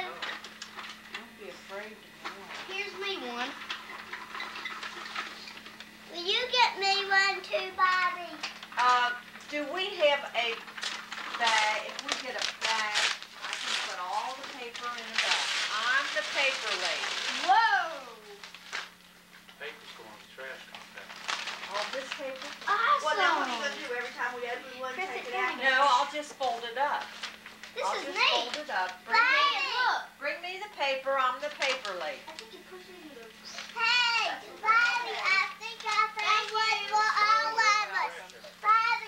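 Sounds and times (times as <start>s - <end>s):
steady low hum: 0.0s - 39.0s
rustling: 10.5s - 19.0s
young children chattering: 32.3s - 39.0s.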